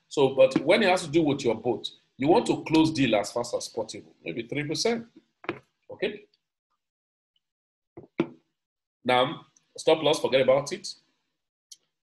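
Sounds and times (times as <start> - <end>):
bottle knocking on desk: 5.4 - 5.7, 8.0 - 8.4.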